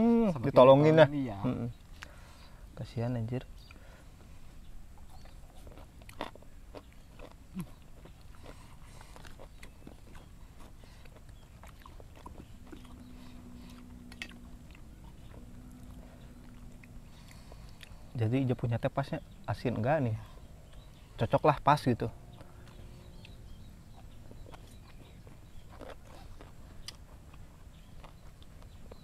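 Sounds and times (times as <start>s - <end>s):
faint low hum: 0.0s - 29.0s
chewing and mouth noises: 4.9s - 19.2s, 22.3s - 29.0s.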